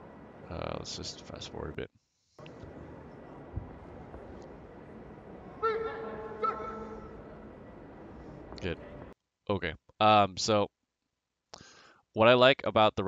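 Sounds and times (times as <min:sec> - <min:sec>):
crowd hubbub: 0:02.4 - 0:09.1.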